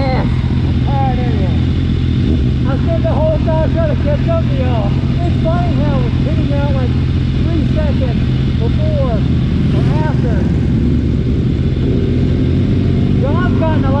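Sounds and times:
muffled voices talking: 0.0s - 1.7s, 2.6s - 10.6s
motorcycle engine idling: 0.0s - 14.0s.

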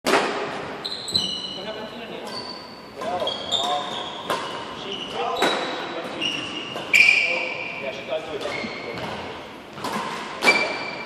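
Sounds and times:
racket striking shuttlecock: 0.1s - 0.7s, 8.4s - 11.0s
shoes squeaking on hardwood floor: 0.6s - 11.0s.

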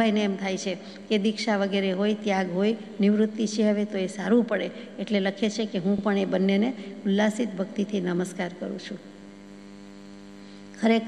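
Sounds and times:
woman's voice: 0.0s - 9.1s, 10.8s - 11.0s
electrical mains hum: 0.0s - 11.0s.

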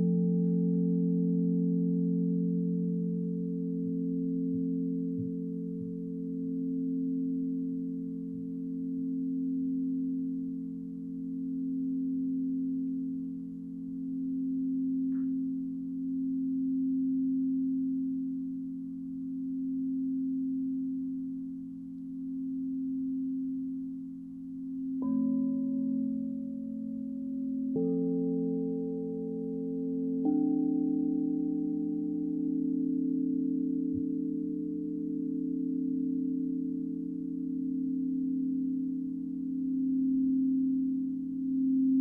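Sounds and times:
singing bowl sustained low tones: 0.0s - 42.0s
singing bowl struck: 14.1s - 18.8s.

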